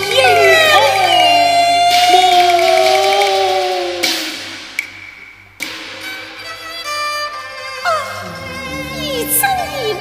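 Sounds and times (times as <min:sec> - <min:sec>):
opera singers holding a note: 0:00.0 - 0:04.3.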